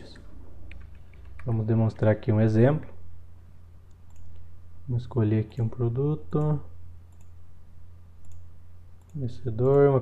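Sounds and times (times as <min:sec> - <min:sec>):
steady low hum: 0:00.0 - 0:10.0
faint computer mouse clicks: 0:08.2 - 0:09.8.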